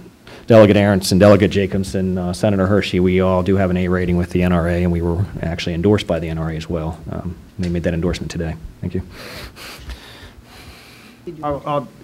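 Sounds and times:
breath into microphone: 9.1s - 11.2s.

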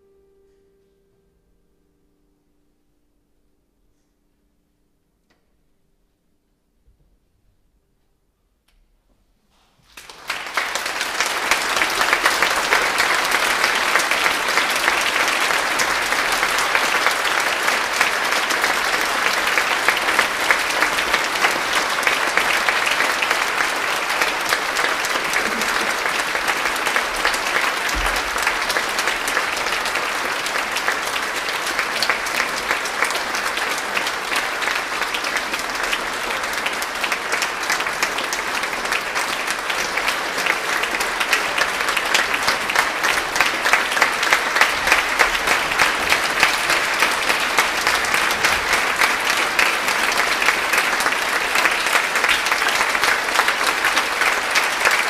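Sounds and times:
audience applauding: 9.9s - 55.0s.

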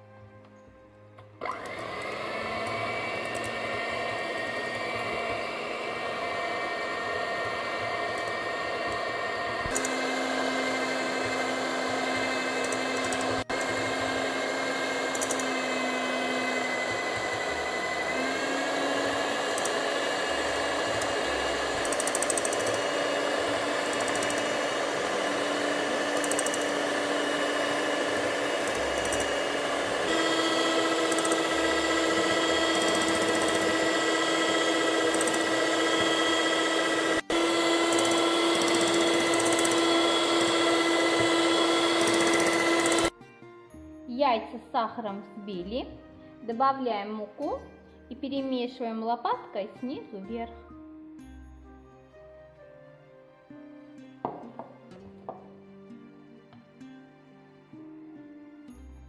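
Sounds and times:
electric hand mixer whine: 1.4s - 43.1s.

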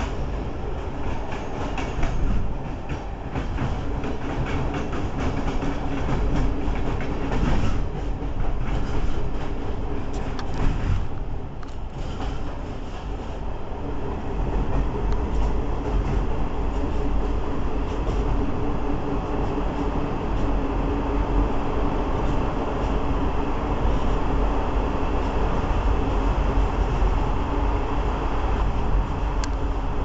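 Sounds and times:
train wheels rumbling on rail: 0.0s - 30.0s.

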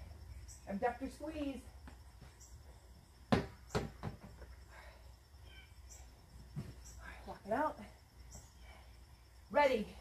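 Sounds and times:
exercise ball thumps: 3.2s - 4.5s.

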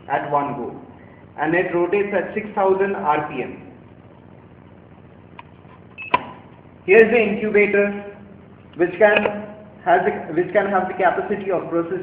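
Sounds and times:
sharp click: 5.3s - 6.4s, 8.7s - 9.4s
high electronic beep: 6.0s - 6.2s.

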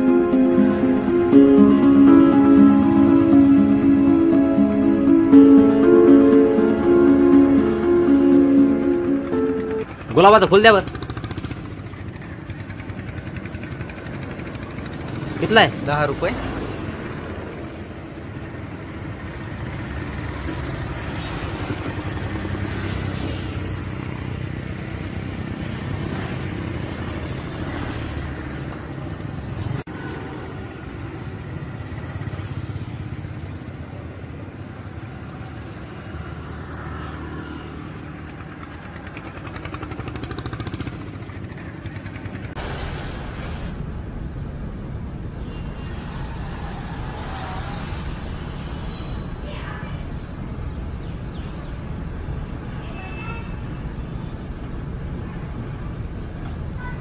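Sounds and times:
vehicles and motorcycles passing: 0.0s - 57.0s.

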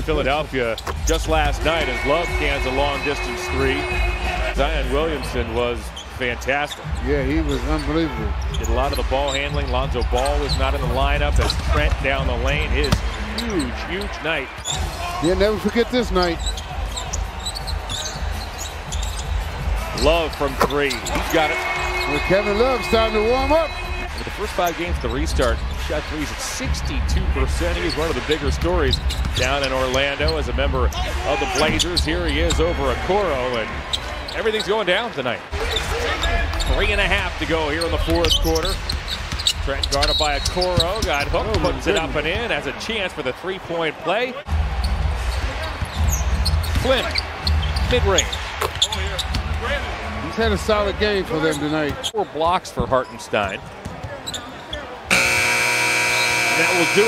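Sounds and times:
low arena hum: 0.1s - 5.8s
sneaker squeaks: 0.7s - 2.2s, 12.8s - 15.0s, 16.3s - 25.1s, 28.9s - 32.7s, 37.8s - 42.1s, 45.7s - 49.4s, 53.1s - 57.0s.

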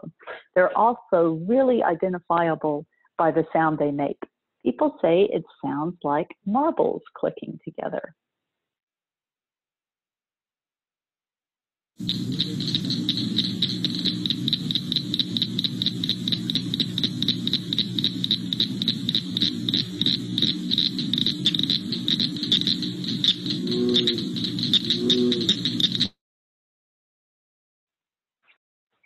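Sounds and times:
cricket frogs clicking: 12.0s - 26.1s
deeper frog calls: 12.0s - 26.1s.

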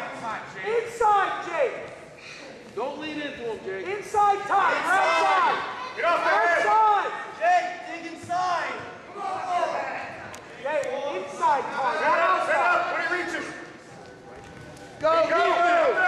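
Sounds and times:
people shouting in a gym: 4.0s - 10.2s, 15.0s - 16.0s.

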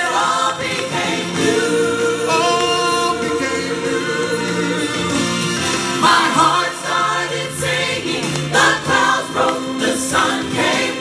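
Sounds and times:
gospel choir singing: 0.0s - 11.0s
live accompaniment: 0.0s - 11.0s.

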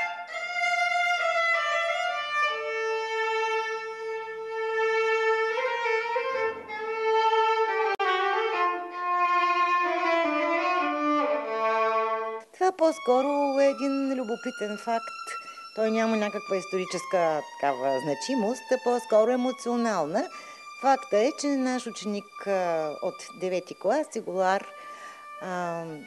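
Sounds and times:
solo violin melody: 0.0s - 26.0s.

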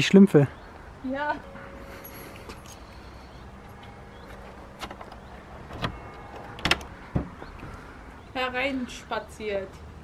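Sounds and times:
wooden door clicks and knocks: 4.8s - 7.8s.

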